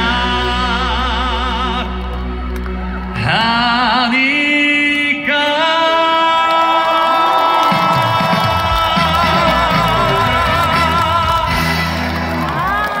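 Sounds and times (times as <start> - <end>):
man singing a long note: 3.2 - 11.8
crowd cheering: 5.2 - 13.0
live band playing: 7.7 - 13.0.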